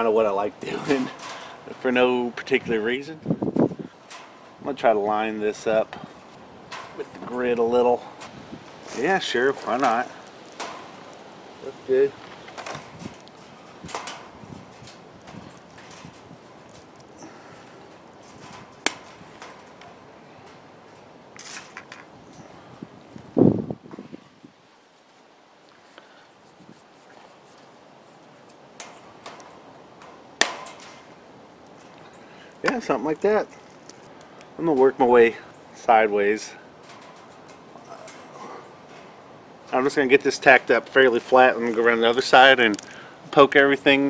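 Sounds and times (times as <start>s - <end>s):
metallic clicks of wire mesh: 6.2s - 7.0s, 9.6s - 11.2s, 12.2s - 22.4s, 28.8s - 32.0s, 36.8s - 39.1s, 42.7s - 43.0s.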